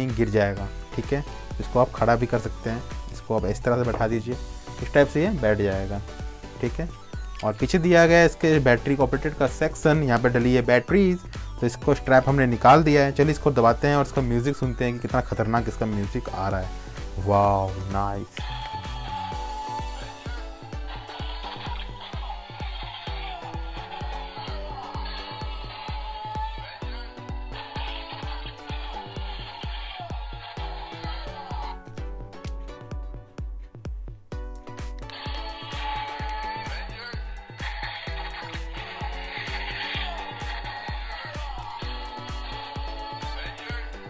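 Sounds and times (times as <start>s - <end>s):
toy playing electronic dance music: 0.0s - 32.6s, 34.6s - 44.0s.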